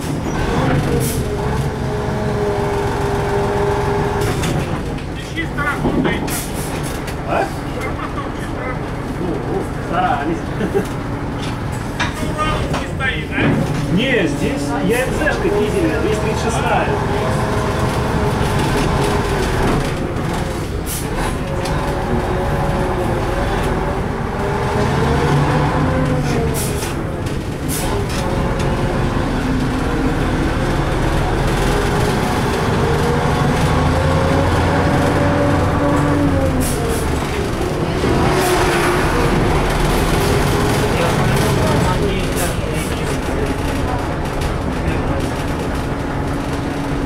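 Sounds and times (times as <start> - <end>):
bus engine rumble: 0.0 - 47.0.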